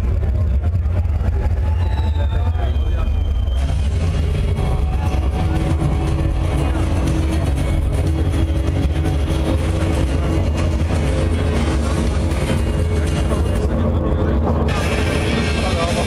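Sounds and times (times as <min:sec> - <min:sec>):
boomy low rumble from loudspeakers: 0:00.0 - 0:16.0.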